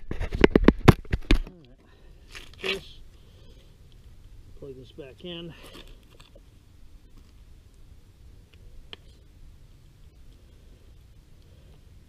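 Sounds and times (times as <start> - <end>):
low steady rumble: 1.6 - 12.0.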